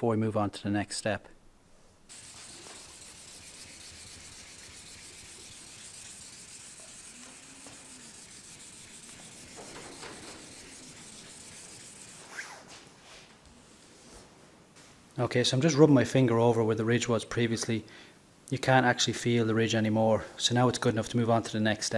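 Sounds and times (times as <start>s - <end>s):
sandpaper rubbing on wet paint: 2.1s - 12.6s.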